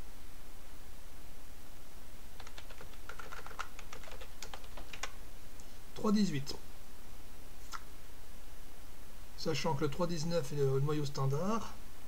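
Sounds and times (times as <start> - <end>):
steady low hum: 0.0 - 12.0
typing on computer keyboard: 2.4 - 5.2.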